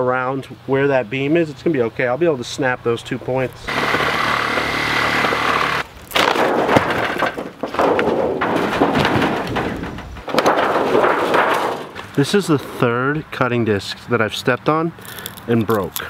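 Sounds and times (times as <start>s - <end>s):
angle grinder whining: 3.4s - 5.9s
uneven knocking and cracking: 3.5s - 12.1s.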